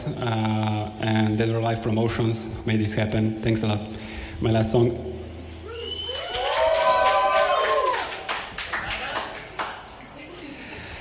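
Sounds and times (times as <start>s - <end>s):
audience clapping: 6.1s - 10.0s.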